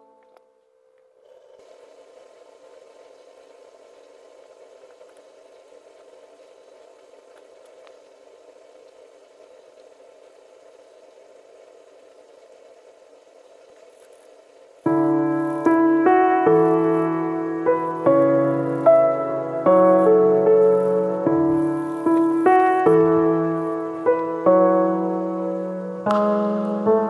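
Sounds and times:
faint steady noise: 0.0s - 27.0s
guitar music: 14.9s - 27.0s.

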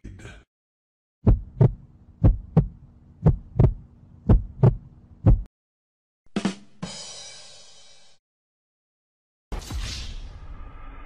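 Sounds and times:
heartbeat thumps: 1.2s - 5.5s.

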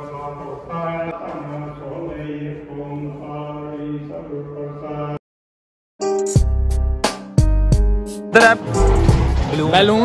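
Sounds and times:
devotional chanting in held notes: 0.0s - 5.2s.

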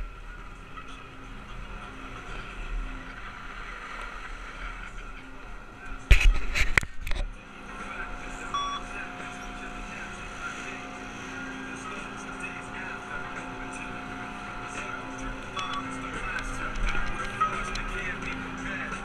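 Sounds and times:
chairlift machinery hum: 0.0s - 19.0s.

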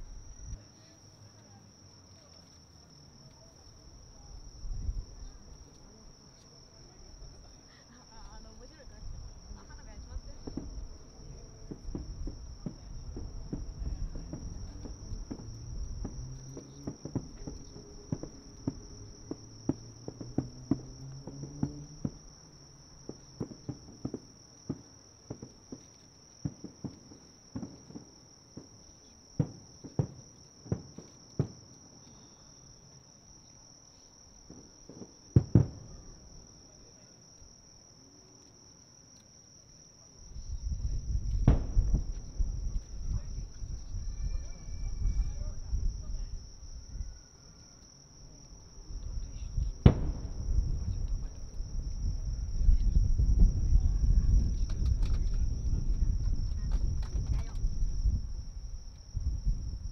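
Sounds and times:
insects chirping: 0.0s - 59.9s
distant firework bangs: 9.5s - 22.4s, 23.0s - 28.8s, 29.4s - 31.7s, 34.4s - 36.4s, 40.4s - 43.8s, 48.7s - 58.3s.

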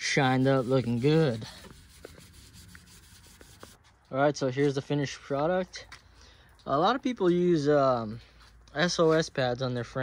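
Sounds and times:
scouring pad scrubbing metal: 0.0s - 3.7s
light scrapes: 0.0s - 4.0s.

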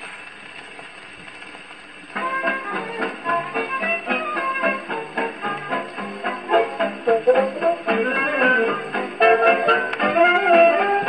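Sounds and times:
record surface hiss and crackle: 0.0s - 11.0s.

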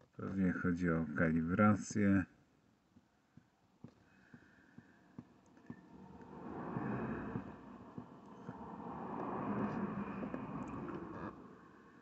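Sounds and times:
vehicle passing: 5.7s - 12.0s.

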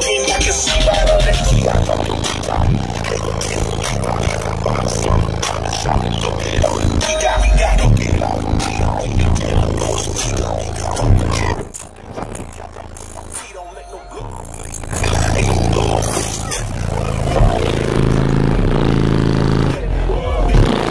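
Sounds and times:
loud car audio bass music: 0.0s - 20.9s.

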